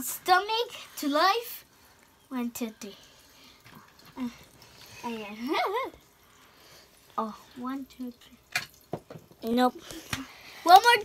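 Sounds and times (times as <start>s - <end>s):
child's wordless vocal sounds: 4.0s - 6.0s.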